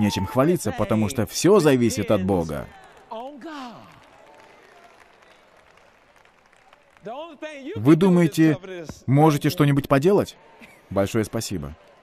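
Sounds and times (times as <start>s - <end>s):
faint applause: 0.0s - 8.9s, 9.8s - 12.0s.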